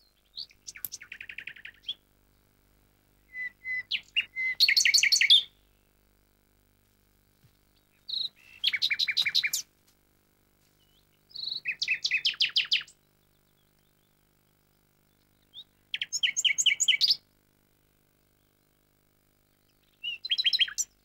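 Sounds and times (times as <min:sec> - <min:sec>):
songbird singing: 0:00.0 - 0:06.0, 0:07.2 - 0:09.8, 0:10.7 - 0:17.3, 0:18.1 - 0:21.0.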